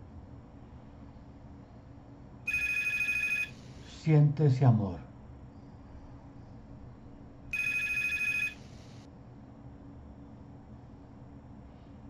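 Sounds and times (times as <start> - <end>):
low background hum: 0.0 - 12.0
electronic warbling ringtone: 2.5 - 3.5, 7.5 - 8.6.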